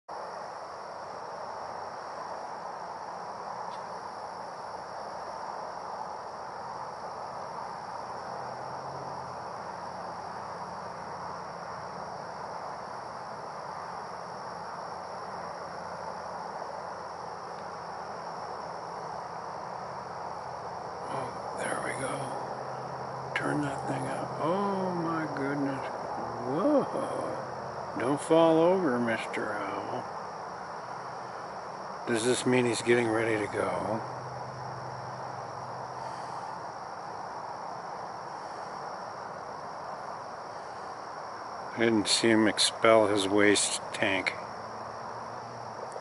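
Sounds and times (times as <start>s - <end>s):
continuous background hiss: 0.0s - 46.0s
insects high-pitched tone: 0.1s - 46.0s.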